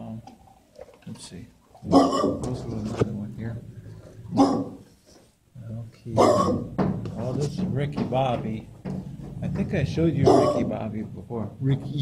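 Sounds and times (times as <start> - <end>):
dog barking: 1.9 - 2.5, 4.3 - 4.9, 6.2 - 6.7, 10.2 - 10.8.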